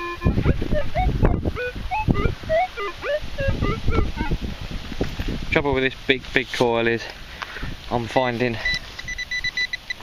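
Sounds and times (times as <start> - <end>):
metal detector beeps: 0.0 - 4.3, 8.6 - 10.0.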